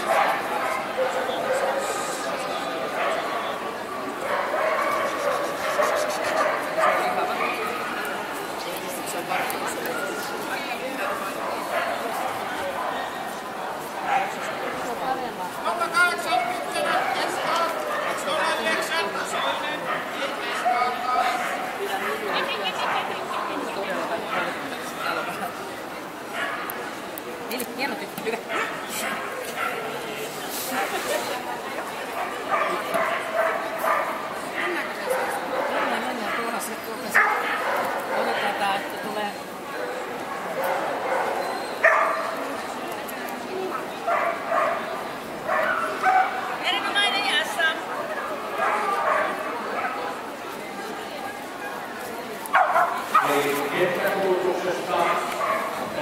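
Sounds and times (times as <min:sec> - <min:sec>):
dogs barking and yipping: 0:00.0 - 0:02.0, 0:04.2 - 0:08.2, 0:26.3 - 0:26.7, 0:28.4 - 0:29.9, 0:32.1 - 0:38.8, 0:39.8 - 0:42.5, 0:43.7 - 0:46.6, 0:48.5 - 0:50.1, 0:52.5 - 0:53.5, 0:54.9 - 0:56.0
crowd chatter: 0:00.0 - 0:56.0
dog yelps: 0:40.6 - 0:42.4.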